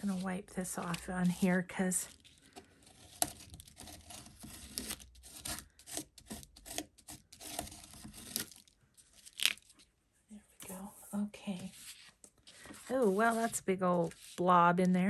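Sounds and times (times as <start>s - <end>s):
paint rubbing and scraping on paper: 11.6s - 14.6s.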